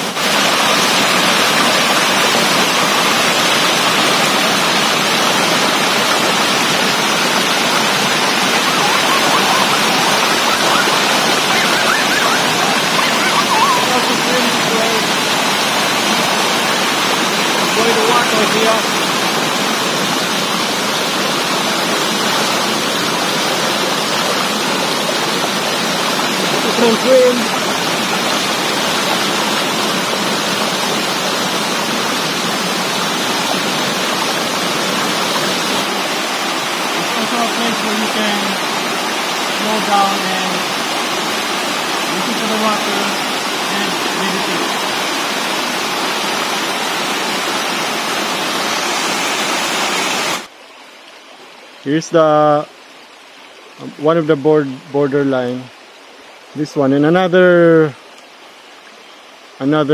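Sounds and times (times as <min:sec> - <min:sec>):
waterfall pouring into rock pool: 0:00.0 - 0:59.9
person speaking: 0:08.4 - 0:15.4, 0:17.6 - 0:19.0, 0:26.5 - 0:27.6, 0:37.0 - 0:38.7, 0:39.6 - 0:40.7, 0:42.1 - 0:44.8.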